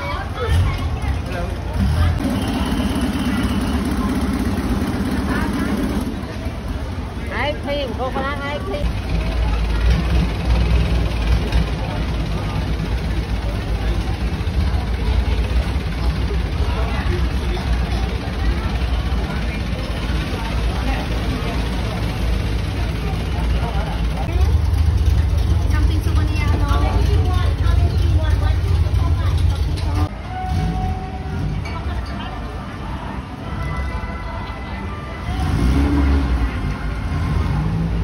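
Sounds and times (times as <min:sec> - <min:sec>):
people talking: 0:00.0 - 0:38.0
boat engine droning: 0:01.6 - 0:31.6.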